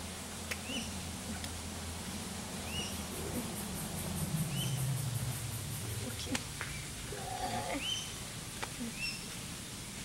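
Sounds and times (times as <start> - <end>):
birds calling: 2.6 - 10.0.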